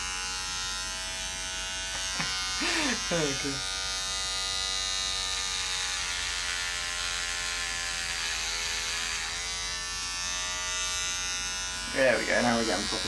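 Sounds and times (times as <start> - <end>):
electric hair clippers buzzing: 0.0 - 13.0.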